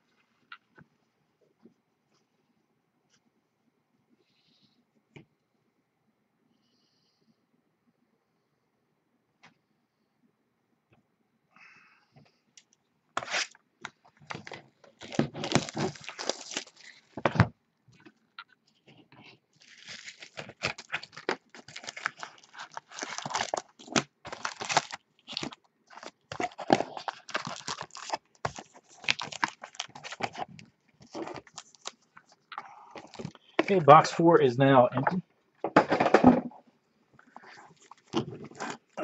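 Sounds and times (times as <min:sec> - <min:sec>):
cardboard box being torn open: 0:13.2 - 0:13.5, 0:14.4 - 0:16.8, 0:19.7 - 0:30.4
plastic wrappers crinkling: 0:13.2 - 0:33.8, 0:37.2 - 0:39.0.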